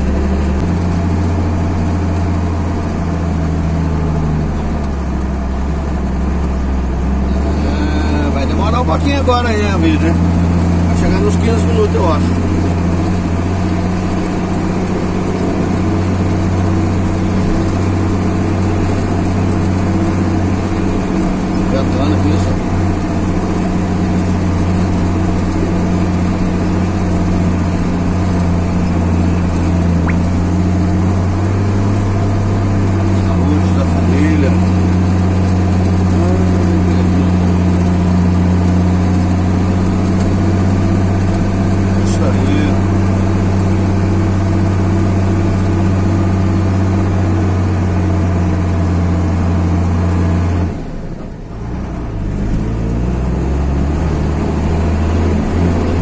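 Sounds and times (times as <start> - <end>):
car engine droning: 0.0 - 56.0.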